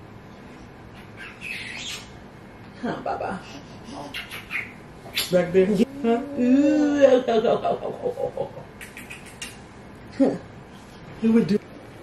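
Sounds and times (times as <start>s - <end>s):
woman speaking: 5.3s - 7.4s, 11.2s - 11.6s.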